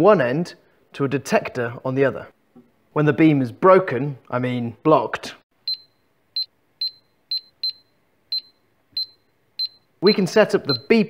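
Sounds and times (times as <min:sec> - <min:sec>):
high-pitched double beeps: 0:05.7 - 0:11.0.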